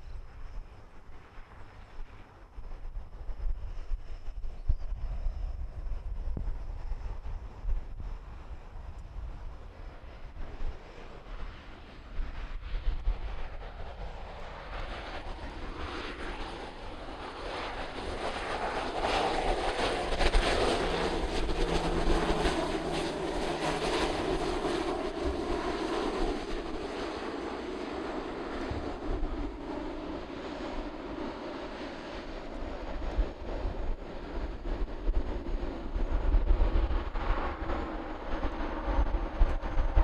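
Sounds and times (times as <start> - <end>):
turboprop plane landing: 0.0 - 40.0
wind rumble on microphone: 0.0 - 40.0.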